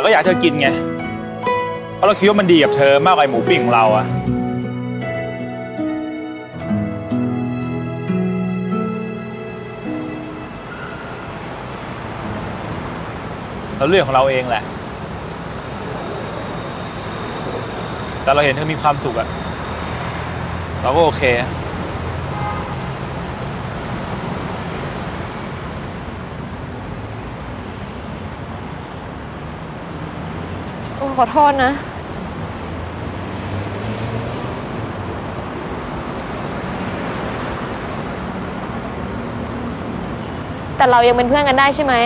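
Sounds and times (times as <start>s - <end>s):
man speaking: 0.0s - 0.9s, 2.0s - 4.2s, 13.8s - 14.7s
street traffic rumble: 0.0s - 42.0s.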